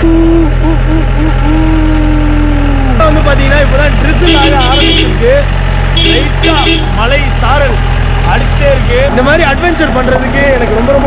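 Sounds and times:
jeep engine rumbling: 0.0 - 11.0
voices talking: 0.0 - 11.0.

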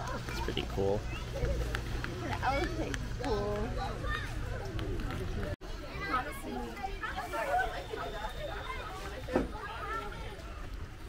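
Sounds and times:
children shouting in pool: 3.8 - 4.6, 5.8 - 10.7.

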